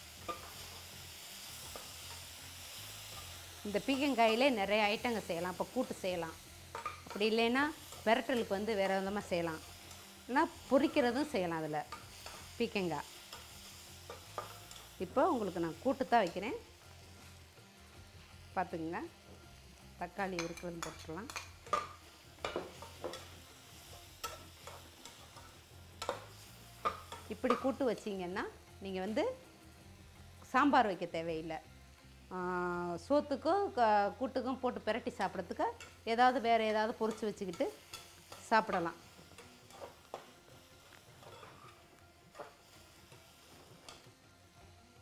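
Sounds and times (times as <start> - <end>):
vegetables sizzling in oil: 0.0 - 45.0
metal spatula scraping pot: 41.2 - 42.6.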